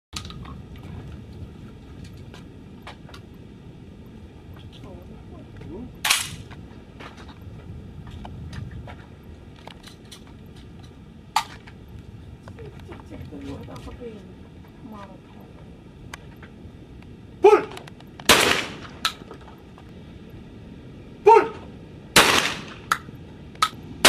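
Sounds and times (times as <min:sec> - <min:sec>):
steady low rumble: 0:00.1 - 0:24.0
shotgun shots: 0:06.0 - 0:06.4, 0:18.2 - 0:19.2, 0:22.2 - 0:23.0.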